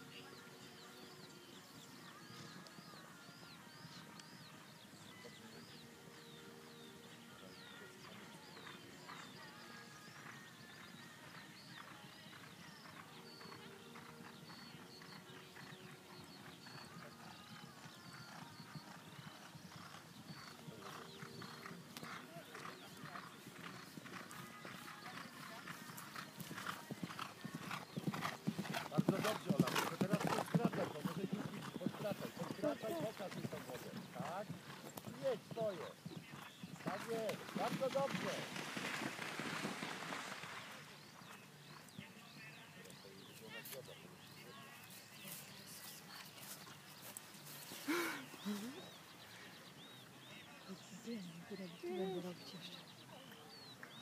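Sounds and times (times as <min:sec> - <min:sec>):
horse galloping on turf: 0:07.6 - 0:43.6.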